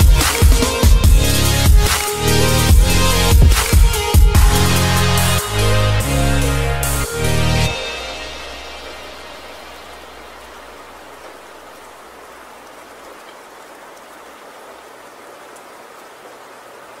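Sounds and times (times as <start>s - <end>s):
rain-like hiss: 7.9s - 17.0s.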